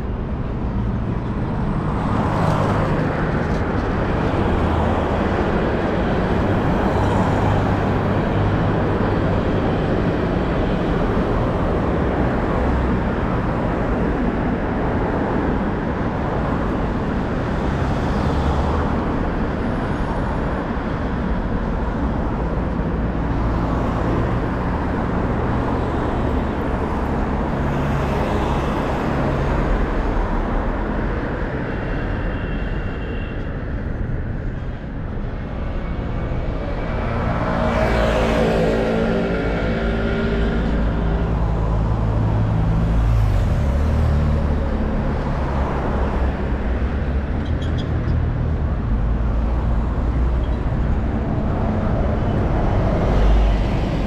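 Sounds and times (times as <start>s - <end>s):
road traffic rumble: 0.0s - 54.0s
vehicles passing: 0.0s - 54.0s.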